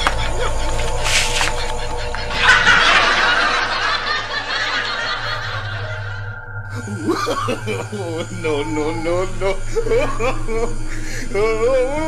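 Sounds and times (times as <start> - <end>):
background music: 0.0 - 12.0
man laughing: 0.0 - 12.0
people laughing: 0.0 - 12.0.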